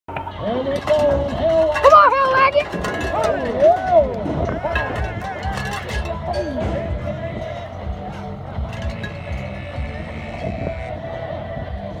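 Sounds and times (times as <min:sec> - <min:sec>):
crowd noise: 0:00.1 - 0:12.0.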